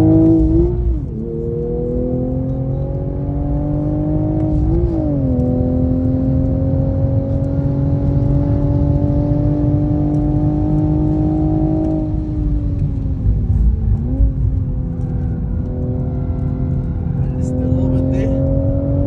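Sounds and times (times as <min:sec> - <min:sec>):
car engine revving under throttle: 0:00.0 - 0:19.0.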